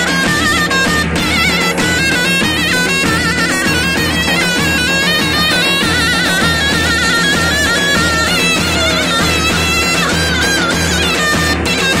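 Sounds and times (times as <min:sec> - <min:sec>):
shrill reedy pipe melody: 0:00.0 - 0:12.0
steady drum beat: 0:00.0 - 0:12.0.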